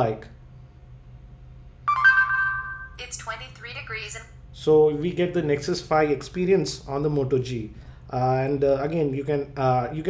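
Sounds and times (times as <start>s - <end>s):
phone two-note electronic chime: 1.9s - 3.0s.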